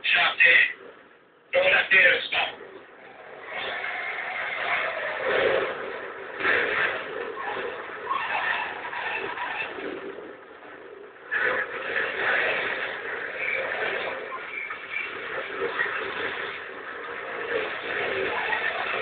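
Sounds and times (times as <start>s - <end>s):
car engine running hard: 2.3s - 19.0s.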